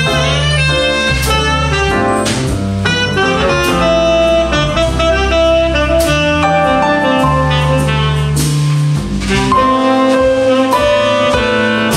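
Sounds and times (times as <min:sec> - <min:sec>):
drum kit: 0:00.0 - 0:11.9
saxophone melody: 0:00.0 - 0:11.9
walking bass: 0:00.0 - 0:11.9.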